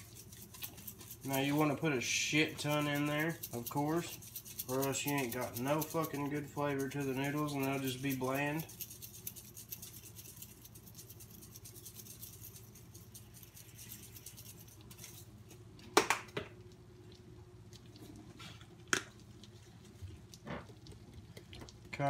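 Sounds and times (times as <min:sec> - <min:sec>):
spice shaker patter: 0:00.0 - 0:16.4.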